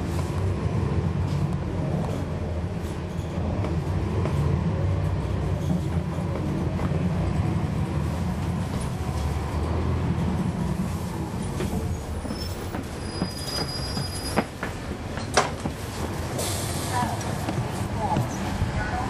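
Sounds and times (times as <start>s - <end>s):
bus diesel engine rumbling: 0.0s - 19.0s
high squeal: 11.8s - 14.6s.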